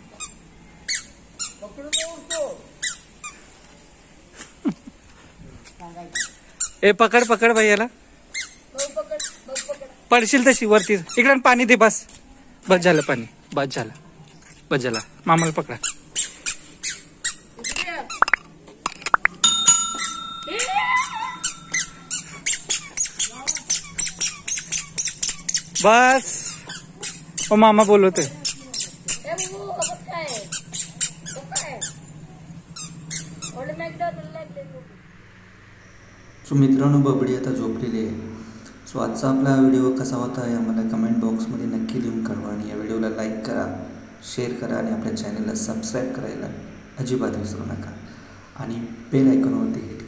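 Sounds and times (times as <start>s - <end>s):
squeaky shoes squeaking: 0.1s - 3.5s, 6.1s - 7.7s, 8.3s - 11.6s, 12.8s - 13.3s, 14.3s - 18.4s, 20.0s - 32.0s, 32.8s - 33.6s
steady high tone: 19.4s - 22.5s
child's voice: 28.3s - 30.5s, 31.4s - 31.9s.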